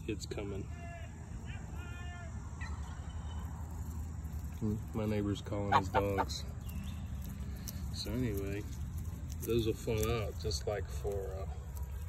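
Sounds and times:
low steady rumble: 0:00.0 - 0:12.0
man calling out distant: 0:00.6 - 0:02.6.

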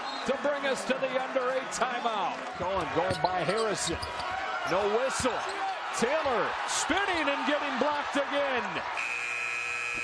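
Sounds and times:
crowd noise: 0:00.0 - 0:09.0
shoes squeaking on court: 0:02.9 - 0:05.8
shot clock buzzer: 0:09.0 - 0:10.0.

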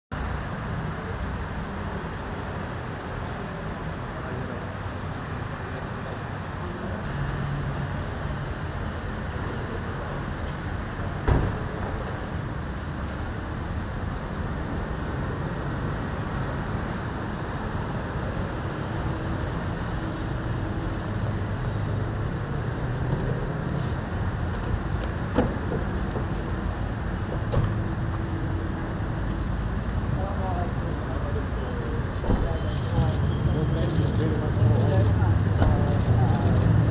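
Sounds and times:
road noise: 0:00.1 - 0:36.9.

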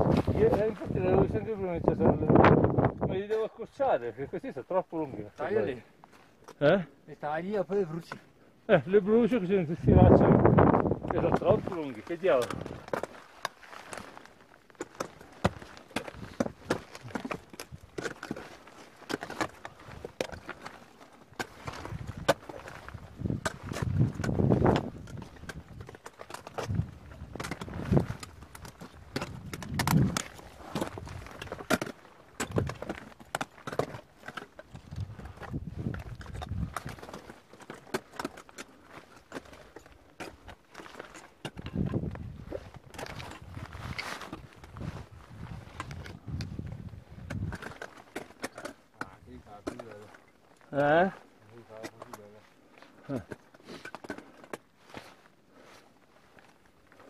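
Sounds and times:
climbing gear knocking on rock: 0:09.8 - 0:51.2.

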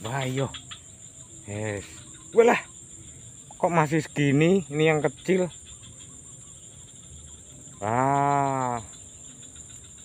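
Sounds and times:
insects chirring: 0:00.0 - 0:10.0
man calling drawn-out wah: 0:07.8 - 0:08.9.

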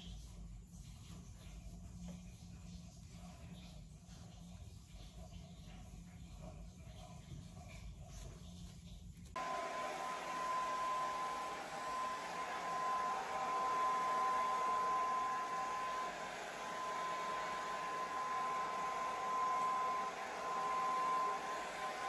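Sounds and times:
hair dryer running: 0:09.3 - 0:22.0.

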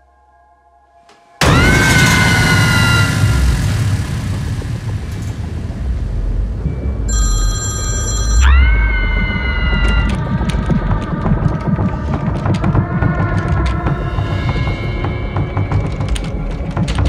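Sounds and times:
shrill screeching hit: 0:01.3 - 0:05.8
deep rumble: 0:01.4 - 0:17.0
high ringing tone: 0:06.6 - 0:09.1.

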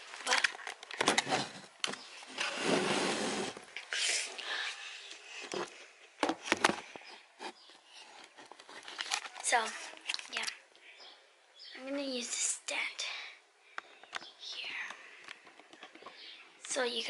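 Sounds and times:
phone rubbing against microphone: 0:02.4 - 0:03.6.

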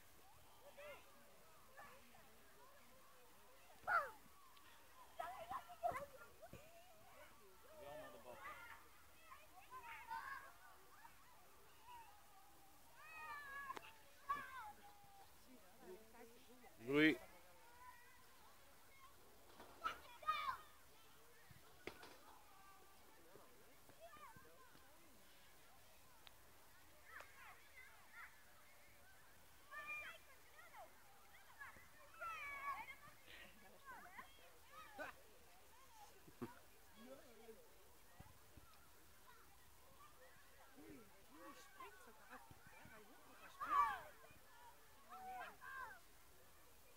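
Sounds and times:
children calling and crying out: 0:00.0 - 0:15.4, 0:17.6 - 0:23.2, 0:26.8 - 0:36.7, 0:38.0 - 0:46.9.

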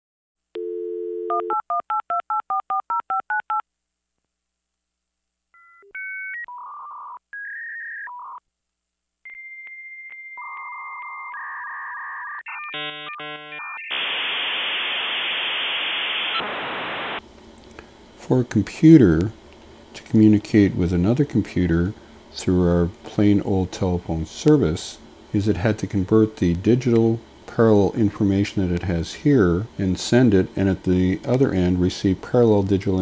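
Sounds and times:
dial tone: 0:00.6 - 0:03.6
loud modem hiss: 0:12.8 - 0:33.0.

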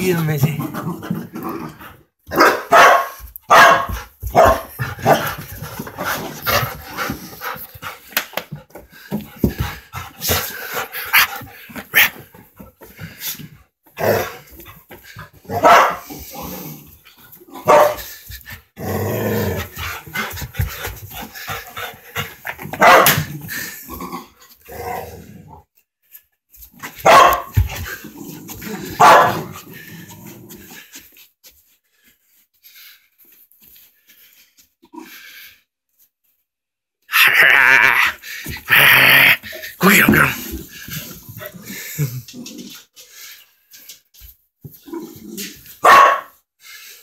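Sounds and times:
dogs growling: 0:00.6 - 0:02.1, 0:09.4 - 0:17.7, 0:18.7 - 0:25.7, 0:37.2 - 0:43.2
dogs barking: 0:02.3 - 0:05.2, 0:15.5 - 0:16.0, 0:17.6 - 0:18.0, 0:22.8 - 0:23.2, 0:27.0 - 0:27.5, 0:29.0 - 0:29.5, 0:45.8 - 0:46.3.

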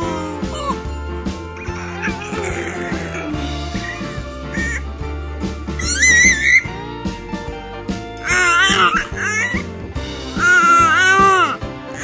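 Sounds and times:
infant squealing: 0:00.0 - 0:00.9, 0:01.6 - 0:05.0, 0:05.6 - 0:06.8, 0:08.2 - 0:09.7, 0:10.4 - 0:12.0
background music: 0:00.0 - 0:12.0.

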